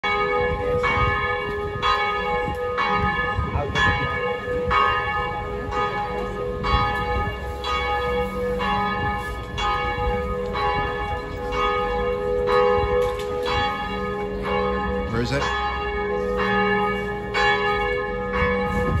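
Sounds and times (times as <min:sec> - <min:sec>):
church bell tolling: 0:00.0 - 0:19.0.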